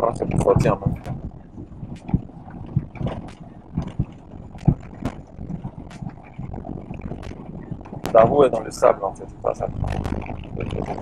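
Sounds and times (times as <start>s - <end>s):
engine and tyres rumbling: 0.0s - 11.0s.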